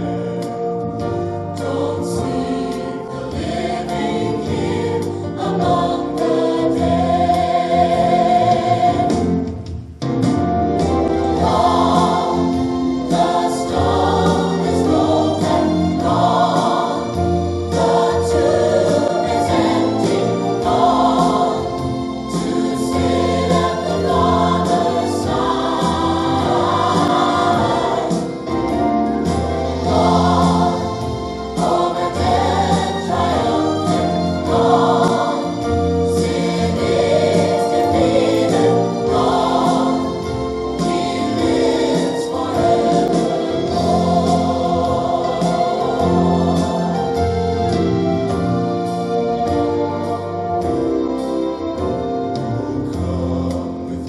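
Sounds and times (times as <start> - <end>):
choir singing gospel song: 0.0 - 54.0.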